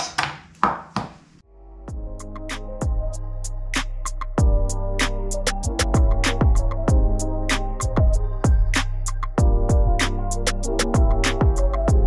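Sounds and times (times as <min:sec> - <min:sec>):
background music with a beat: 0:01.9 - 0:12.0.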